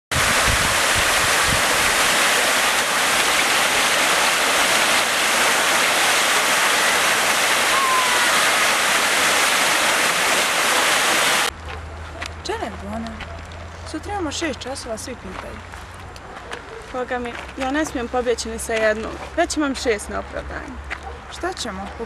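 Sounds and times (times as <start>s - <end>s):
water fountain jet spraying: 0.1s - 11.5s.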